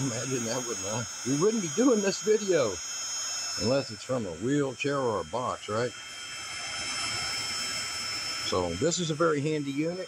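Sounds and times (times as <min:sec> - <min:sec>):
heat gun fan blowing with high whine: 0:00.0 - 0:10.0.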